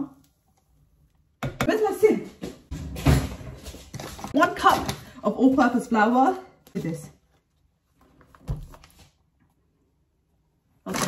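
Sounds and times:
woman speaking: 0:01.6 - 0:02.5, 0:04.3 - 0:07.2.

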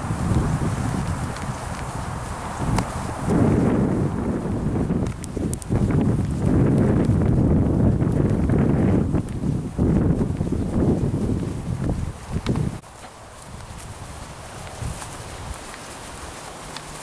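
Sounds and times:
footsteps on path: 0:00.0 - 0:17.0
wind buffeting microphone: 0:00.0 - 0:17.0.

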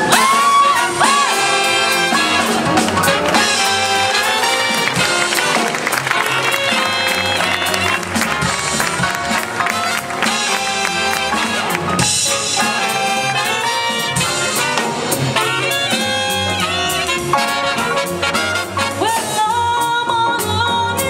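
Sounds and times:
double bass: 0:00.0 - 0:21.0
drums: 0:00.0 - 0:21.0
guitar: 0:00.0 - 0:21.0
saxophone: 0:00.0 - 0:21.0
trombone: 0:00.0 - 0:21.0
trumpet: 0:00.0 - 0:21.0.

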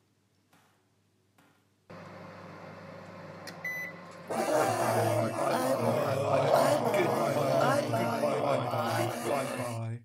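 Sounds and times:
voices talking over one another: 0:04.3 - 0:09.9.

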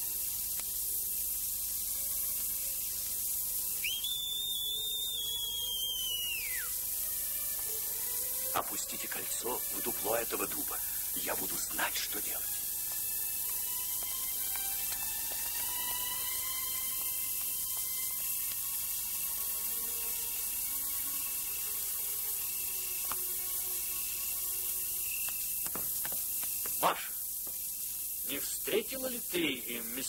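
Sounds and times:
film soundtrack hiss: 0:00.0 - 0:30.0
faint orchestral film score: 0:01.7 - 0:25.6.

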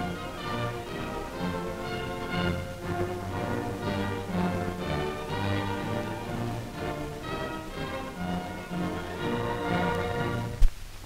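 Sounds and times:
orchestral music: 0:00.0 - 0:10.6.

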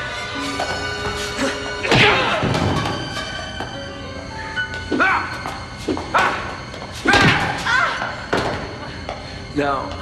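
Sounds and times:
music score: 0:00.0 - 0:07.0
slam: 0:07.1 - 0:07.6.

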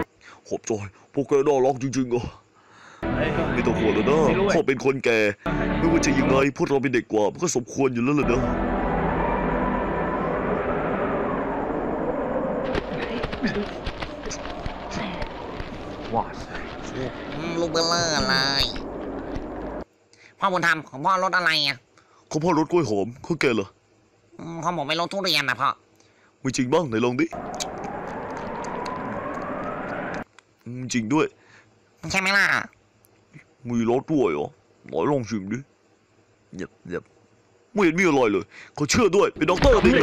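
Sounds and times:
faint rising whine: 0:08.0 - 0:19.9, 0:27.3 - 0:30.2
dense rumble: 0:08.2 - 0:19.8, 0:27.4 - 0:30.2
steady rushing noise: 0:08.2 - 0:19.8.

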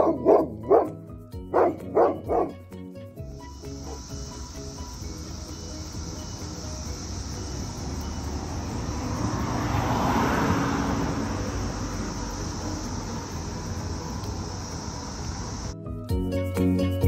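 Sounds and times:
distant traffic rumble: 0:00.0 - 0:02.6, 0:03.2 - 0:15.8
light background music: 0:00.0 - 0:09.8, 0:11.6 - 0:17.0
high-pitched insect drone: 0:03.2 - 0:15.8.

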